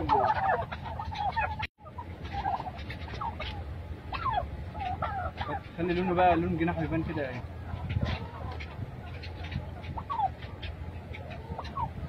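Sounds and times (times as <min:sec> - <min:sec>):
turkeys gobbling: 0:00.0 - 0:12.0.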